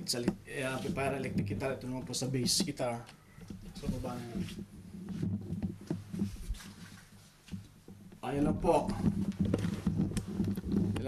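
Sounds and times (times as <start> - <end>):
phone handling knocks and rubbing: 3.4 - 6.8, 7.4 - 11.0.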